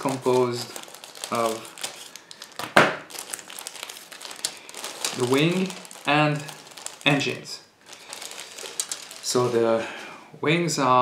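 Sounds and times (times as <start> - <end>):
plastic bag crinkling: 0.0 - 9.8.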